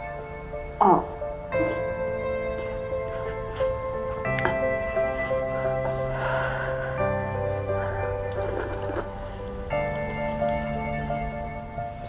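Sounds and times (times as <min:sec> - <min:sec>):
soft sustained background music: 0:00.0 - 0:12.0.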